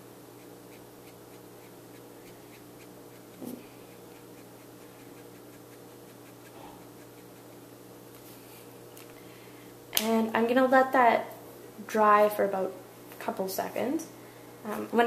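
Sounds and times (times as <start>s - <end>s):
steady low hum: 0.0s - 15.0s
marker strokes on paper: 0.4s - 7.6s.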